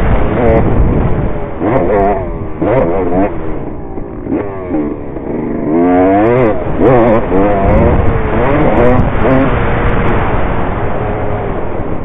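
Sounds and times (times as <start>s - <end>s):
dirt bike engine revving: 0.0s - 12.0s.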